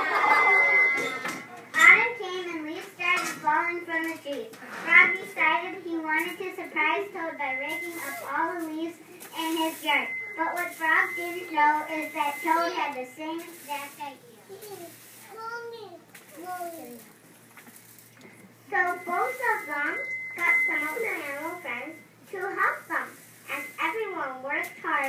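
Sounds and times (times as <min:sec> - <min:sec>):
loudspeaker high whine: 0:00.0 - 0:02.2, 0:04.9 - 0:14.1, 0:18.2 - 0:25.0
child speaking: 0:01.5 - 0:17.1, 0:18.7 - 0:25.0.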